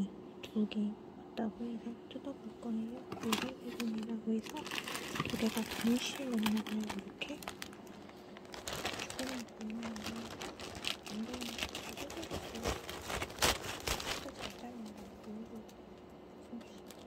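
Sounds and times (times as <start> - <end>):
plastic bag crinkling: 3.1 - 15.3, 16.6 - 17.0.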